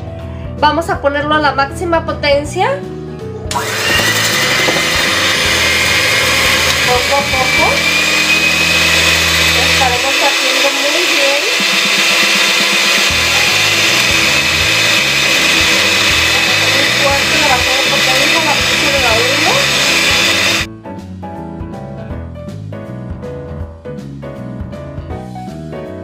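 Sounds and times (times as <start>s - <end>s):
electric hand mixer whirring: 3.5s - 20.7s
light jazz piano music: 20.7s - 26.0s.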